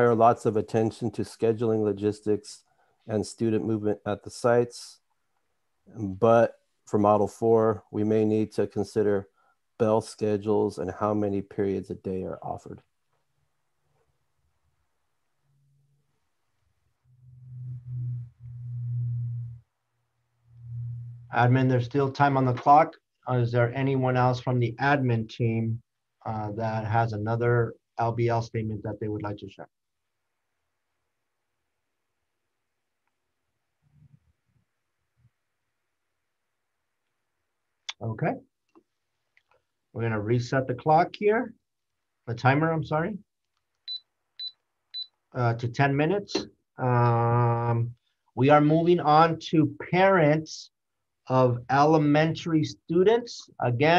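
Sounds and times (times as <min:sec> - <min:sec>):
low steady hum: 0:17.1 - 0:29.6.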